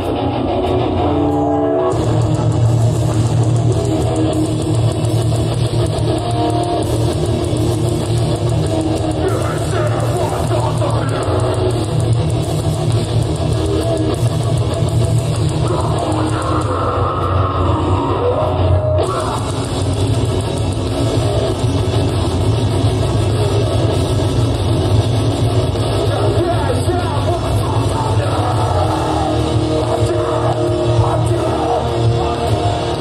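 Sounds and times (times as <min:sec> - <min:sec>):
distorted electric guitars: 0:00.0 - 0:33.0
drum kit: 0:00.0 - 0:33.0.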